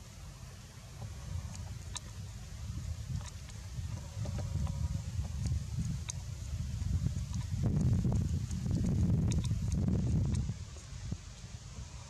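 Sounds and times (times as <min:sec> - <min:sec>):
leaves rustling: 0:00.0 - 0:12.0
wind buffeting microphone: 0:01.0 - 0:12.0.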